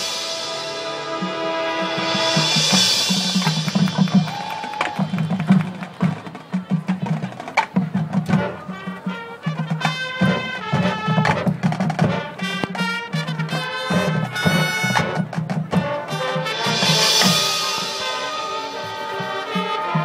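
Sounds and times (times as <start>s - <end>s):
wind instruments sustained chords: 0.0s - 5.0s, 15.9s - 20.0s
marching band playing: 0.0s - 20.0s.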